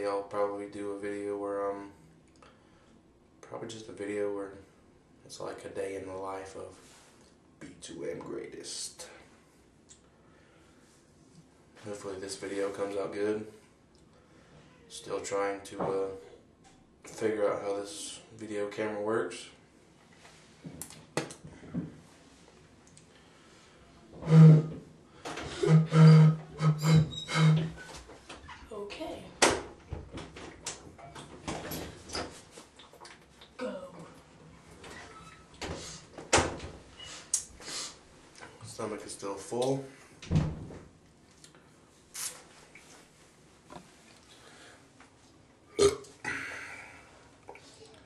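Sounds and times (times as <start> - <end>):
man burping: 25.5 - 27.6, 33.6 - 34.1, 45.7 - 46.9
man making wordless vocal sounds: 25.6 - 27.7
breathy exhale: 46.3 - 47.2.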